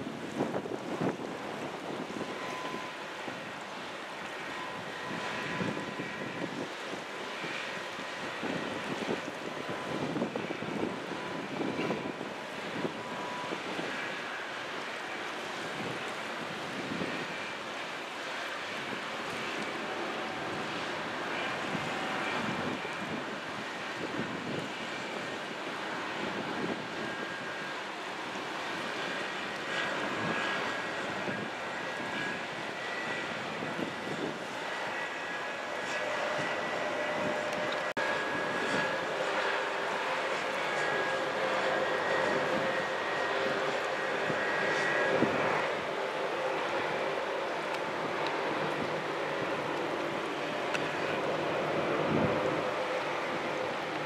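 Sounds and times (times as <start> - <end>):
faint whining tones: 0.0 - 54.0
ship engines droning: 0.0 - 54.0
wind gusts on microphone: 0.0 - 54.0.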